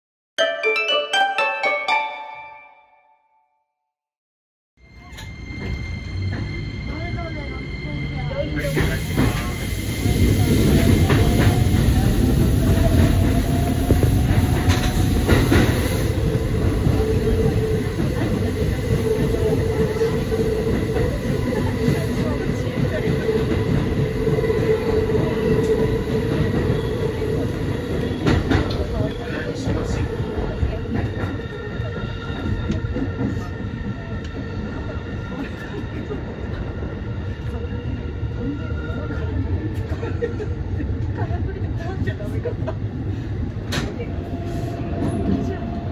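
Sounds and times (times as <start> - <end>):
train wheels rumbling on rail: 5.0 - 45.9.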